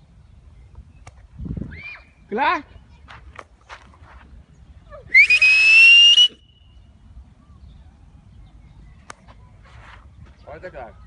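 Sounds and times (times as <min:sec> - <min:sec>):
loud rising whistle: 0:05.1 - 0:06.8.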